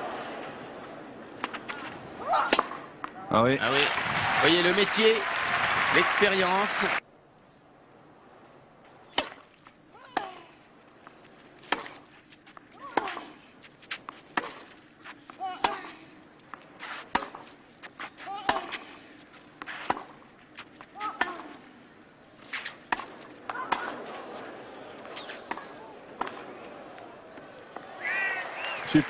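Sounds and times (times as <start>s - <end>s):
tennis ball hit by rackets: 1.4s - 3.2s, 9.1s - 9.5s, 11.6s - 12.1s, 12.8s - 18.9s, 19.6s - 21.6s, 22.5s - 27.0s.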